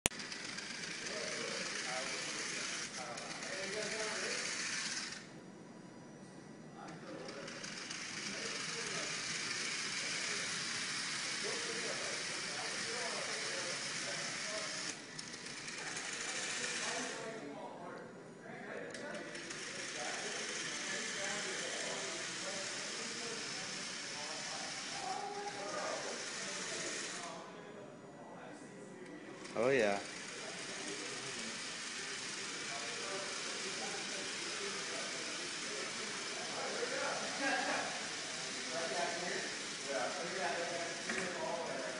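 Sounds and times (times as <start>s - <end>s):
gear motors whirring: 0.1s - 5.3s, 7.0s - 17.4s, 19.0s - 27.4s, 29.4s - 41.9s.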